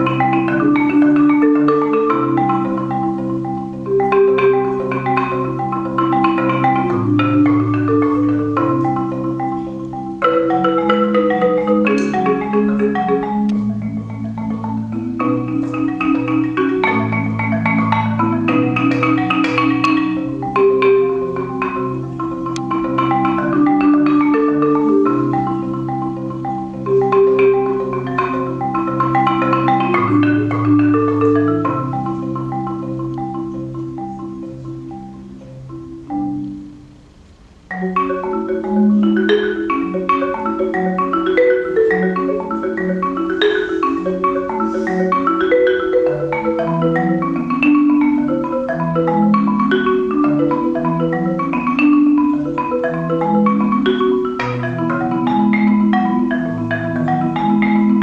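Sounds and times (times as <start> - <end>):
marimba played with mallets: 0.0 - 58.0.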